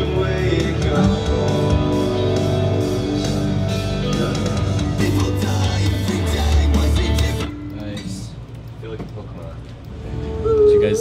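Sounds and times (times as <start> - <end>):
pop-punk music over speakers: 0.0 - 7.8
quiet music: 0.0 - 8.6.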